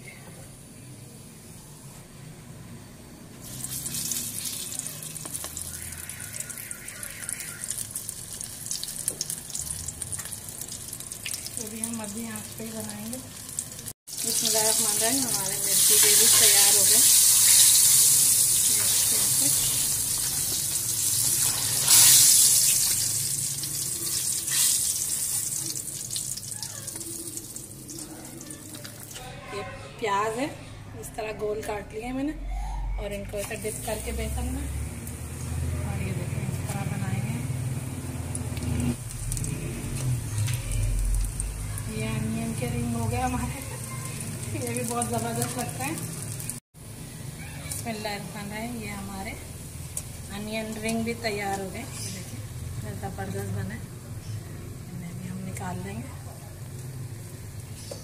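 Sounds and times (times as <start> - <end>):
chillies deep-frying in oil: 0.0 - 29.6, 33.3 - 58.0.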